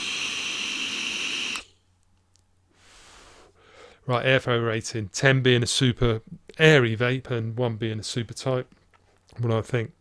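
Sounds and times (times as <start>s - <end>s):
airy hiss of vape draw: 0.0s - 1.7s
breathy exhale: 2.7s - 4.0s.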